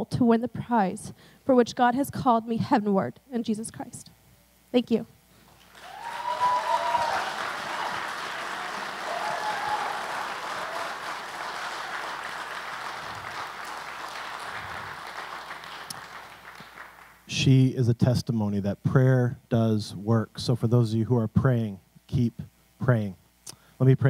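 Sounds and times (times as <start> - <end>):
congregation applauding: 5.6 - 17.3
brief cheer: 5.7 - 15.0.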